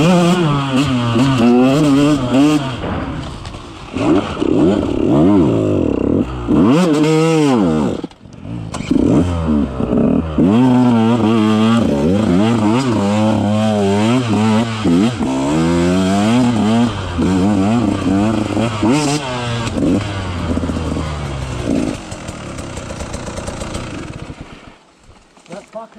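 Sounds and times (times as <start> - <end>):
dirt bike engine revving: 0.0 - 24.8.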